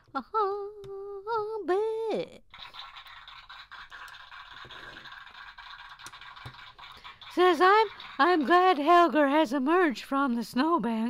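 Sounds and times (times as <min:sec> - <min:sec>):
plastic toy scraping on table: 0:02.7 - 0:07.0.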